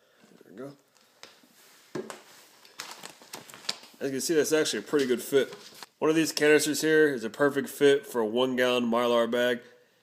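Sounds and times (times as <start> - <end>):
foil bag crinkling: 2.5 - 4.0, 4.7 - 5.9.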